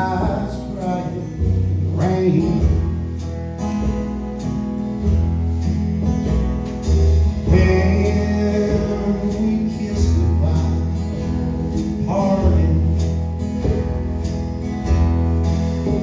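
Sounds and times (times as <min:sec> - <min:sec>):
acoustic guitars strumming: 0:00.0 - 0:16.0
drums: 0:00.0 - 0:16.0
upright bass notes: 0:00.0 - 0:16.0.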